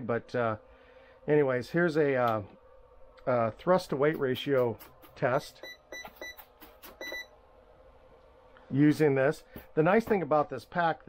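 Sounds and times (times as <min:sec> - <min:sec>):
short electronic beeps: 0:05.6 - 0:07.3.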